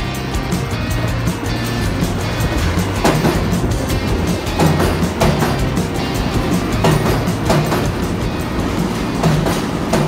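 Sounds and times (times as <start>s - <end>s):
music playing: 0.0s - 10.0s
subway train rumbling: 0.0s - 10.0s
wheels clicking: 0.0s - 10.0s.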